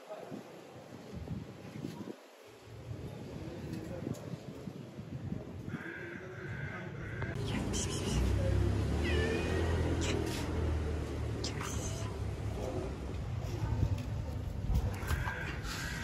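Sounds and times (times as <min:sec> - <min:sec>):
kitten meowing: 0:09.0 - 0:10.5.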